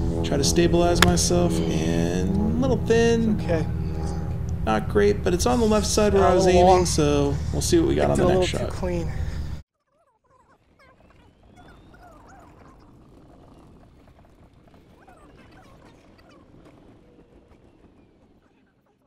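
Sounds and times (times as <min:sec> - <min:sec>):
bird chirps: 0:10.8 - 0:13.0.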